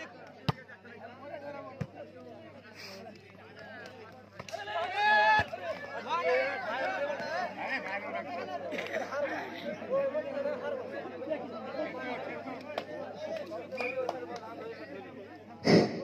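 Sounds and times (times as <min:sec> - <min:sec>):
spectators chattering: 0:00.0 - 0:16.0.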